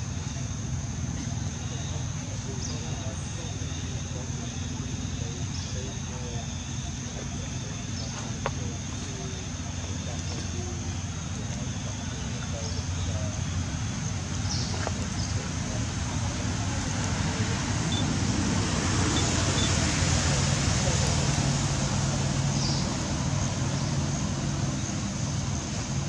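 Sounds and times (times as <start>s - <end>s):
faint far-off voices: 0.0s - 26.0s
low hum of distant traffic: 0.0s - 26.0s.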